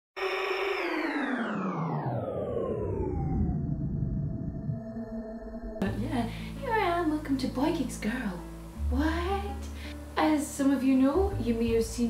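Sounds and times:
falling synthesizer sweep: 0.2 - 5.8
low synth drone: 0.2 - 6.6.

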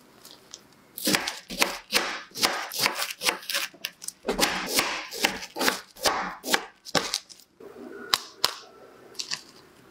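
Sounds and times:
knife cutting on a board: 1.0 - 7.2.

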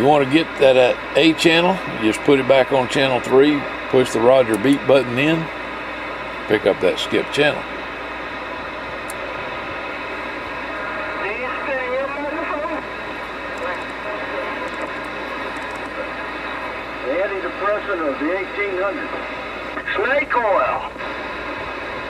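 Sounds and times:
radio static: 0.0 - 22.0
garbled radio voice: 10.8 - 14.9, 19.8 - 21.0.

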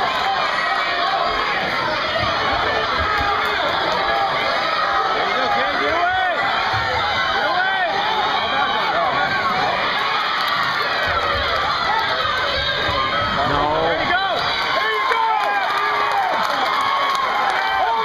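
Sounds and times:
crowd shouting and cheering: 0.0 - 18.0.

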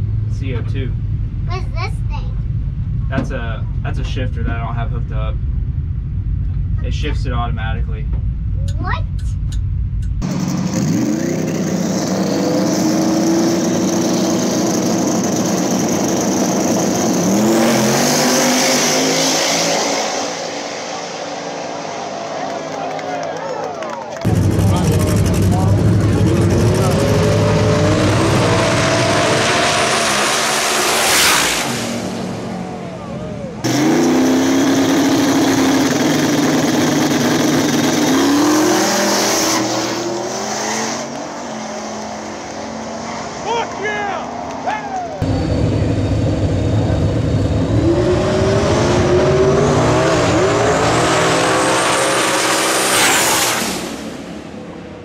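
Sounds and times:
race cars accelerating hard: 10.2 - 55.0.

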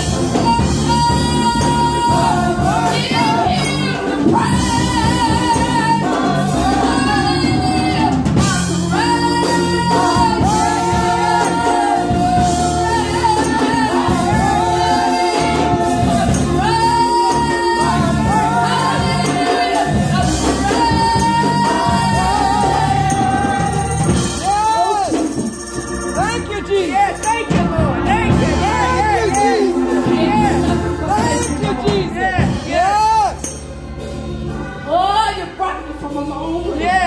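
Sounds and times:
women singing gospel song: 0.0 - 33.3
instrumental backing: 0.0 - 37.0.

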